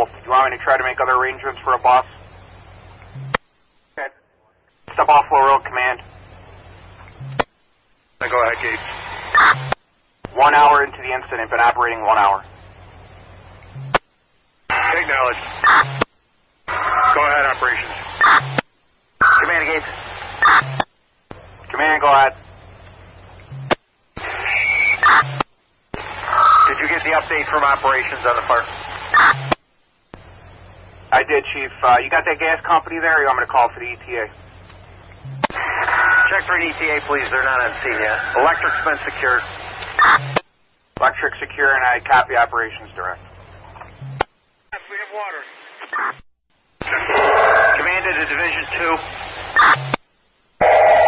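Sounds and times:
garbled radio voice: 0:00.0 - 0:02.2, 0:04.9 - 0:06.0, 0:08.2 - 0:09.7, 0:10.3 - 0:12.4, 0:14.7 - 0:15.9, 0:16.7 - 0:18.4, 0:19.2 - 0:20.8, 0:21.7 - 0:22.4, 0:26.2 - 0:29.4, 0:31.1 - 0:34.4, 0:35.5 - 0:40.2, 0:41.0 - 0:43.2, 0:46.8 - 0:49.9
radio channel hiss: 0:00.0 - 0:51.0
short steady radio tones: 0:00.0 - 0:51.0
buzzy tone: 0:50.6 - 0:51.0.

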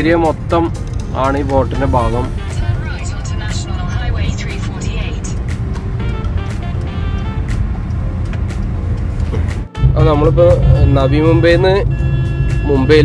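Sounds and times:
car interior rumble: 0:00.0 - 0:13.0.

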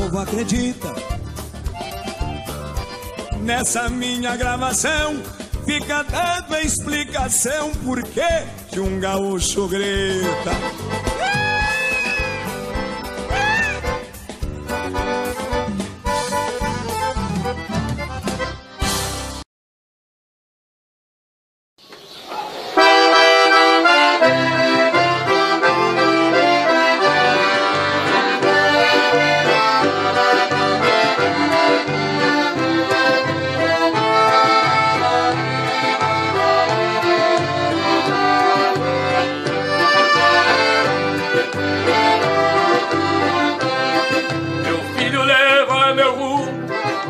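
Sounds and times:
accordions playing: 0:00.0 - 0:19.4, 0:22.8 - 0:47.0
acoustic guitars bass rhythm: 0:00.0 - 0:19.4, 0:23.2 - 0:47.0.

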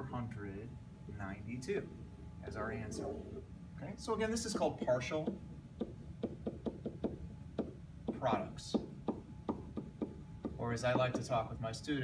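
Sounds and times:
pen tapping on whiteboard: 0:05.2 - 0:11.2.

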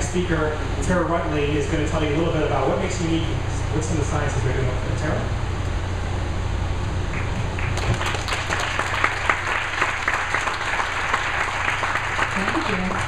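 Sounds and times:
low hum: 0:00.0 - 0:13.0
audience applauding: 0:07.2 - 0:13.0.

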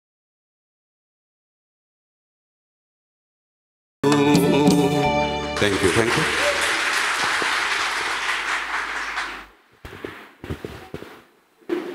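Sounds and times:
audience applauding: 0:05.5 - 0:09.5.

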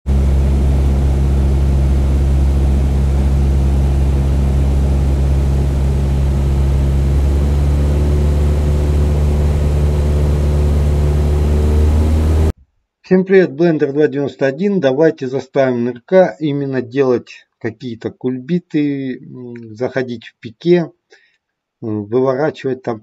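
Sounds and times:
propeller aircraft engine humming: 0:00.0 - 0:12.6.

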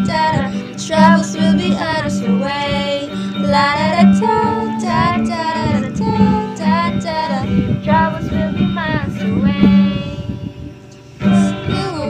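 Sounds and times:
strummed acoustic guitar: 0:00.0 - 0:12.0
women singing pop melody: 0:00.0 - 0:12.0.

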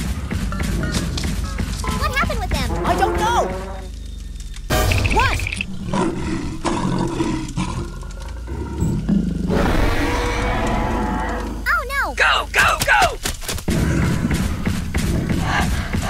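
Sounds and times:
dinosaur roar: 0:05.6 - 0:11.7.

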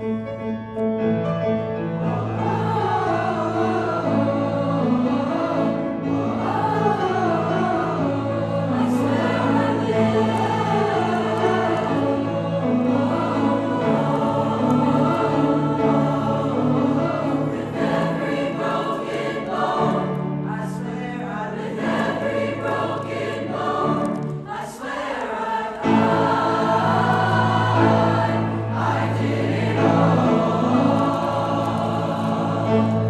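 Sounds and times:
mixed choir singing: 0:02.0 - 0:33.0.

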